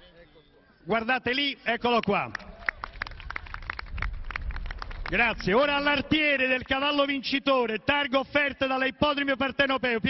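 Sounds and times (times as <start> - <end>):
group hand clapping: 1.9 - 6.0.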